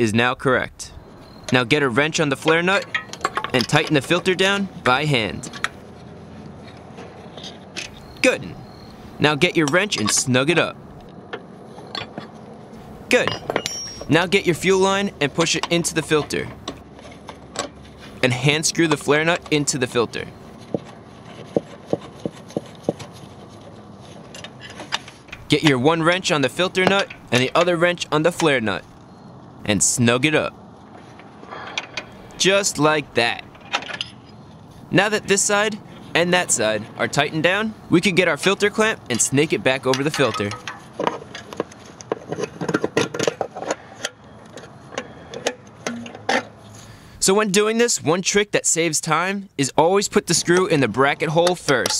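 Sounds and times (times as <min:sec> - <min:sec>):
metal clamp clicking and scraping: 0:02.4 - 0:04.4, 0:33.4 - 0:34.4.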